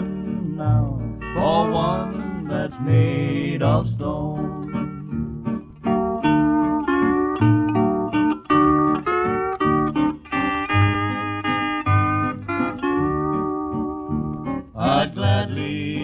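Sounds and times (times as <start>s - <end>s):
rhythm guitar: 0.0s - 16.0s
steady bass: 0.0s - 16.0s
string lead melody: 0.0s - 16.0s.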